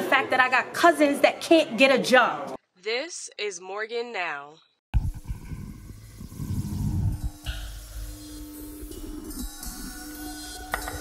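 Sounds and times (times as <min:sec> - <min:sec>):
steady hum: 0:05.0 - 0:11.0.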